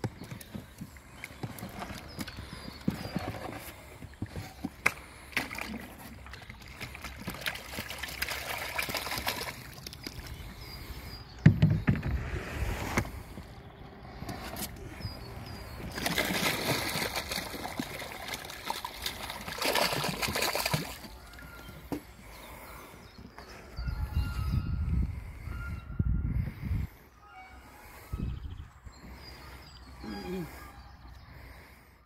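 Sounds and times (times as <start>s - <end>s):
water splashing and sloshing: 0.0s - 13.6s, 14.2s - 22.9s.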